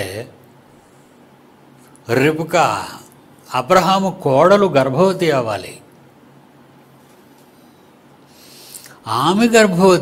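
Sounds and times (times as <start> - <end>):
man drawing breath: 7.5 - 9.0.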